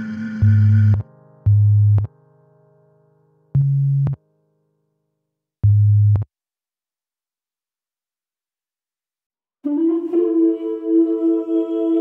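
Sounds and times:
low synth bass tones: 0:00.4 - 0:02.1, 0:03.6 - 0:04.2, 0:05.6 - 0:06.3.

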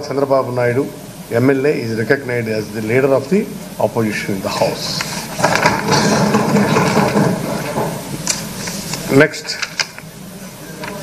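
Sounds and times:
people thumping desks: 0:05.0 - 0:10.0.

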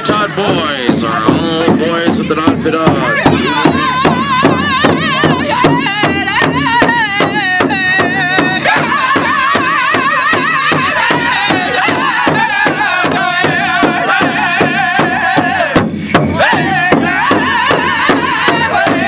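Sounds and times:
large drum beating: 0:00.0 - 0:19.0
group singing in unison: 0:02.9 - 0:19.0.

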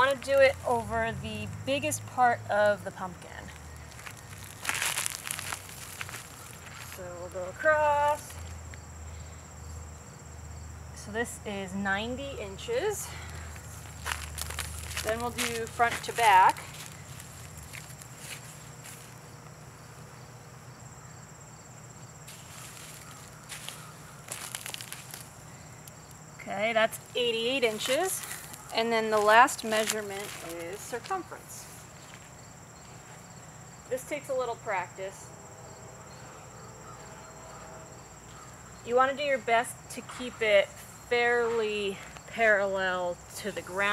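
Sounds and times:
flip-flop footsteps on grass: 0:00.0 - 0:01.7, 0:03.5 - 0:08.8, 0:13.2 - 0:19.9, 0:22.2 - 0:26.2, 0:26.9 - 0:33.5
crickets trilling: 0:00.0 - 0:43.9
soft scuffs and rustles: 0:03.5 - 0:07.2, 0:13.1 - 0:19.6, 0:22.2 - 0:25.5, 0:27.0 - 0:33.4
person speaking: 0:15.0 - 0:16.8, 0:26.4 - 0:31.7.

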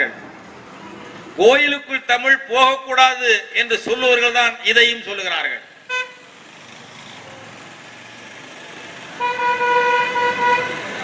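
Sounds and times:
vehicle horn honking: 0:05.9 - 0:06.3, 0:09.2 - 0:10.9.

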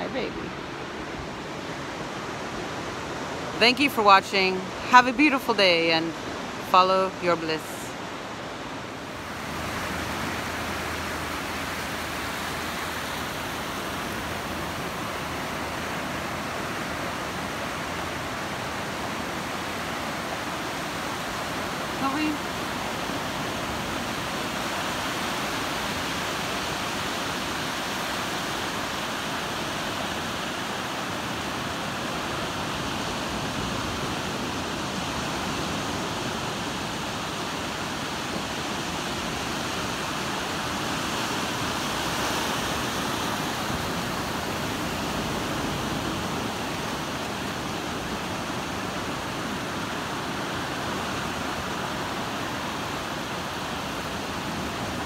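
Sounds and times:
ocean surf on a sandy beach: 0:00.0 - 0:55.0.

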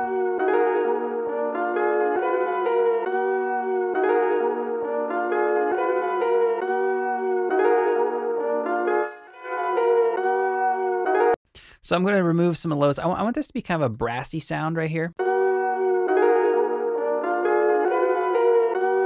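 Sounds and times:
brassy chord melody over a beat: 0:00.0 - 0:11.4, 0:15.2 - 0:19.0.

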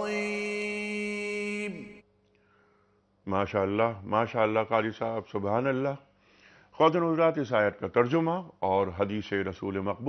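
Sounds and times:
man reciting a long held note: 0:00.0 - 0:02.0.

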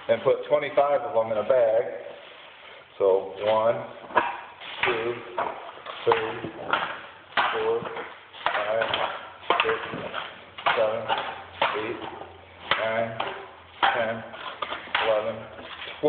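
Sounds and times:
person counting aloud: 0:07.4 - 0:15.6.

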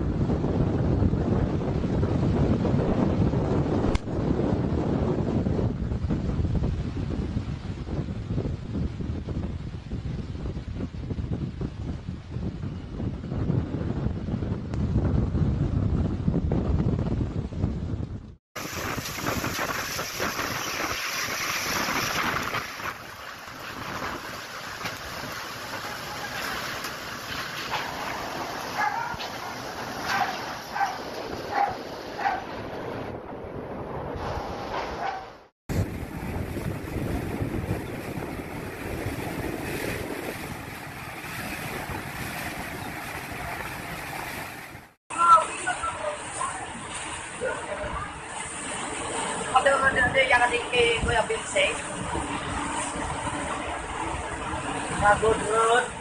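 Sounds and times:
typhoon wind: 0:00.0 - 0:56.0
heavy rain: 0:18.6 - 0:33.0, 0:35.7 - 0:51.7.

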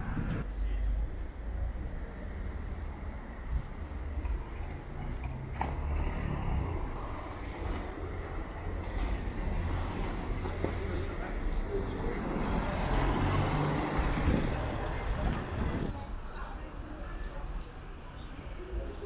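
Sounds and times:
motor vehicle rumbling: 0:00.0 - 0:19.0
people's voices in background: 0:00.0 - 0:19.0.

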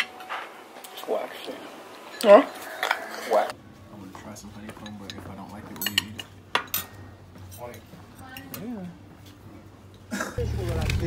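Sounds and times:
cutlery clinking on plate: 0:04.6 - 0:07.0.

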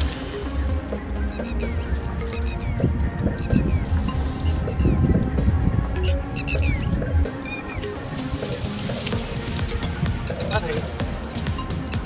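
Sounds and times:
music with heavy low beat: 0:00.0 - 0:12.0.

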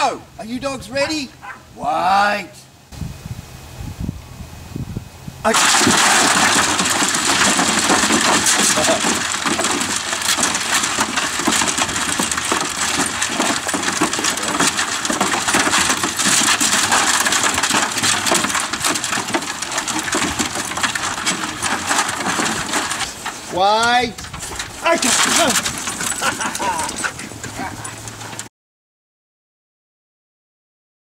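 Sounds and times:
dogs crunching kibble on metal: 0:05.5 - 0:28.5.

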